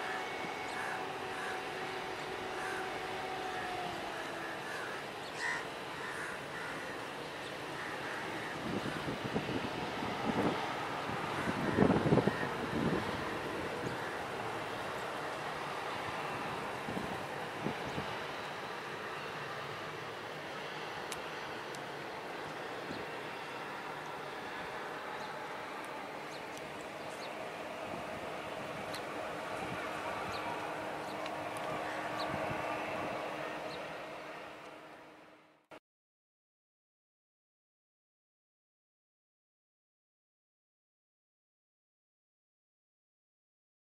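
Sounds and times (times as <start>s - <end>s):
distant jet engine rumble: 0.0s - 35.6s
wind buffeting microphone: 7.8s - 18.8s, 24.4s - 34.5s.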